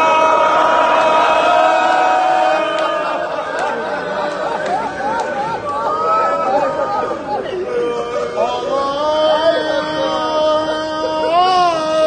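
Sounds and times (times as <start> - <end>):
crowd voices: 0.0 - 12.0
man chanting lament: 5.5 - 12.0.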